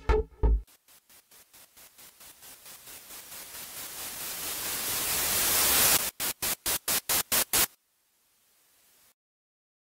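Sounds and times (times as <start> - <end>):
electronic white-noise riser: 0.7 - 7.8
stuttering noise bursts: 0.7 - 7.8.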